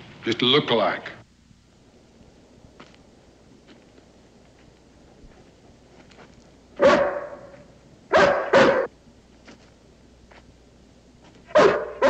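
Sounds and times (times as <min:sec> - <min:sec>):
large dog barking: 0:06.8 - 0:08.9, 0:11.5 - 0:12.0.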